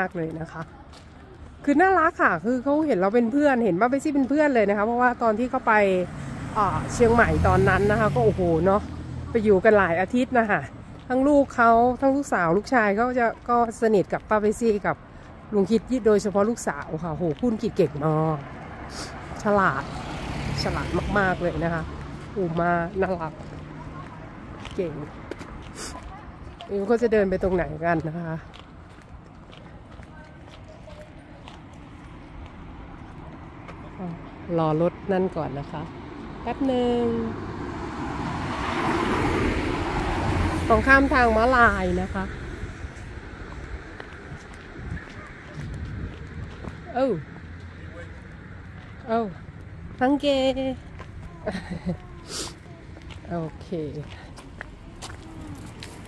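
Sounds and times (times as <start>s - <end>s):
woman speaking: 0.0s - 0.9s, 1.6s - 18.5s, 19.4s - 25.2s, 25.8s - 28.6s, 33.9s - 37.4s, 40.6s - 42.4s, 46.8s - 47.4s, 49.0s - 55.8s
quiet street background noise: 0.0s - 56.0s
car driving past: 5.4s - 9.8s, 18.4s - 25.9s, 32.0s - 48.7s.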